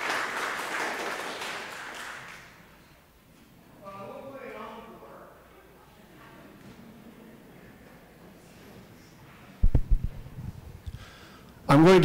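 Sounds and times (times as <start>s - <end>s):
faint low voices: 5.0s - 9.6s.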